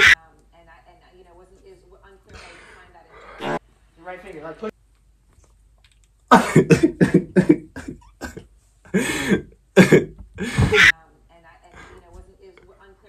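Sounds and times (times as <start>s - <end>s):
man coughing: 6.3s - 10.9s.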